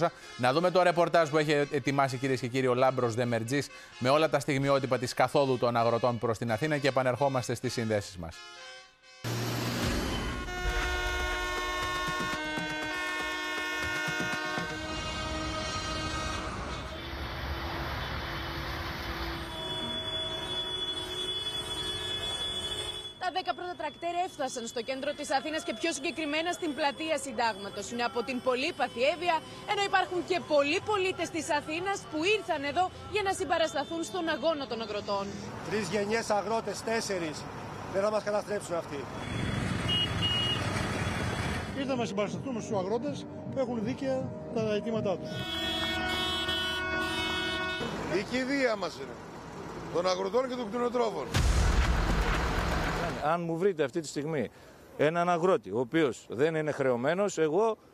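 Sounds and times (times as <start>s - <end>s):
tractor horns blaring: 0.0s - 36.8s, 39.0s - 41.8s, 45.2s - 49.1s
engine noise: 9.3s - 22.4s.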